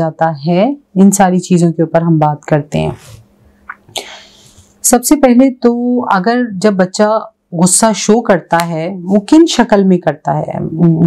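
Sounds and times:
woman talking: 0:00.0 - 0:03.2, 0:04.8 - 0:11.0
sharp breath: 0:03.9 - 0:04.8.

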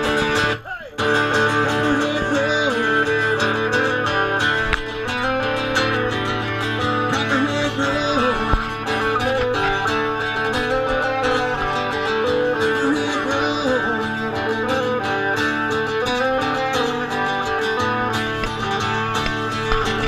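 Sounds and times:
live country band: 0:00.0 - 0:20.0
strummed and picked guitars: 0:00.0 - 0:20.0.

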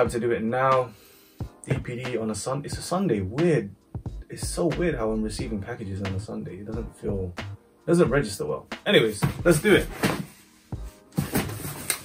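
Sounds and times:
music: 0:00.0 - 0:12.0
cardboard carton being handled: 0:10.9 - 0:12.0.

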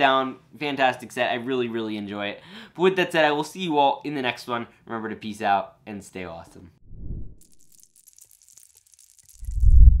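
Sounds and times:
plastic pieces clattering: 0:07.4 - 0:09.6.

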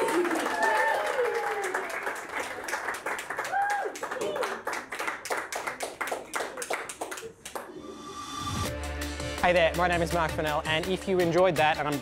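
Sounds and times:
audience clapping: 0:00.0 - 0:07.9.

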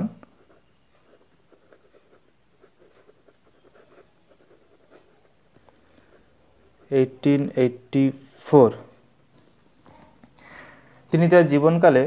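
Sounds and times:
pen scratching on paper: 0:00.2 - 0:07.8.

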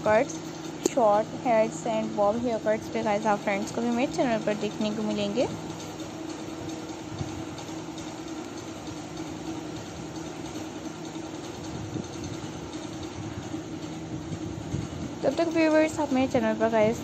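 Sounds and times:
steady mechanical hum: 0:00.0 - 0:17.0.

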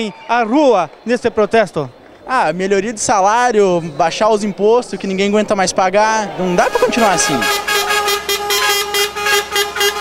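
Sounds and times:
truck horn blast: 0:06.6 - 0:10.0.

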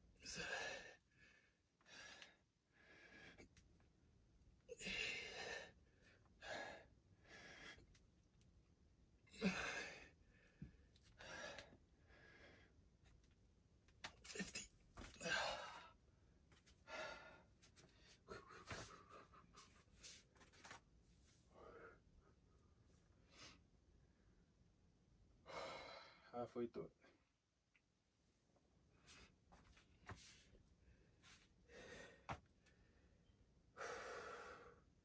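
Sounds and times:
man breathing hard: 0:00.3 - 0:03.6, 0:04.7 - 0:08.0, 0:09.3 - 0:12.8, 0:15.1 - 0:16.0, 0:16.8 - 0:20.2, 0:25.4 - 0:26.3, 0:31.6 - 0:33.0, 0:33.7 - 0:35.0.

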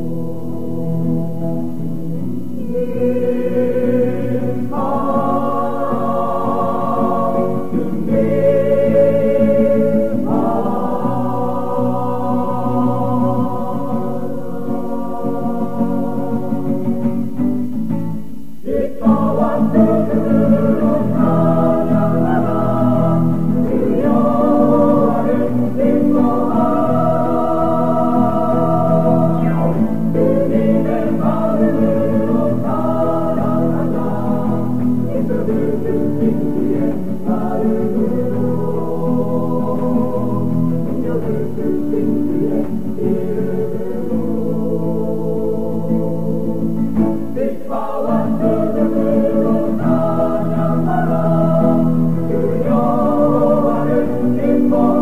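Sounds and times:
choir singing gospel chords: 0:00.0 - 0:55.0
instrumental accompaniment: 0:16.6 - 0:43.8.

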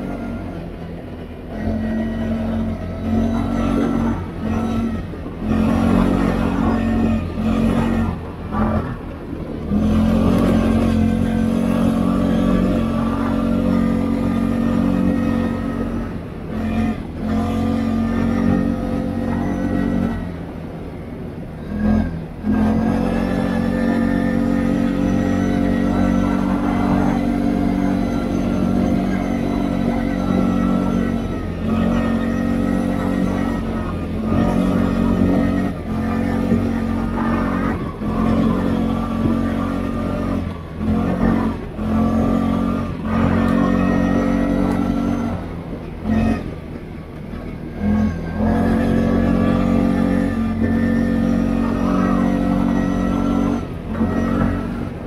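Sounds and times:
atv engine running uphill: 0:00.0 - 0:55.0.

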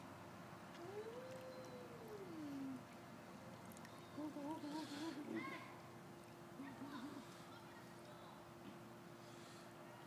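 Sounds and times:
baby cooing: 0:00.8 - 0:02.8.

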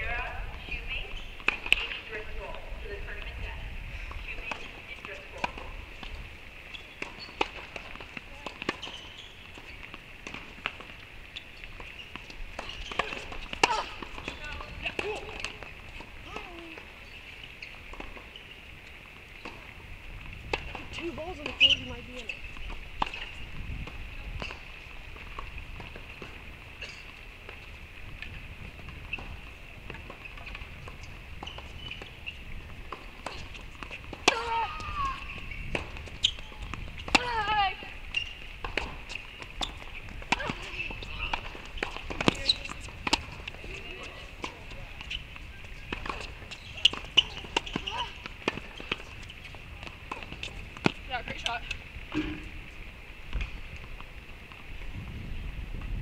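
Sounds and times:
tennis balls struck and bouncing: 0:00.7 - 0:03.5, 0:04.1 - 0:19.8, 0:27.4 - 0:54.7.

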